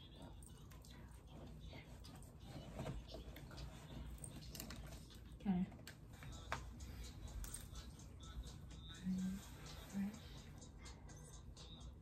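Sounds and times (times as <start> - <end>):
headphones clicking and rustling: 1.9 - 8.0.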